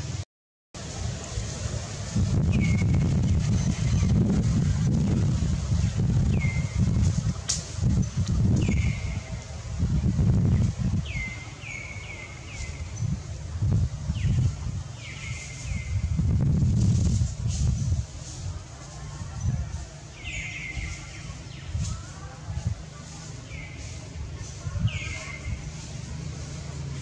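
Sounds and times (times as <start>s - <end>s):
wind buffeting microphone: 0.8s - 27.0s.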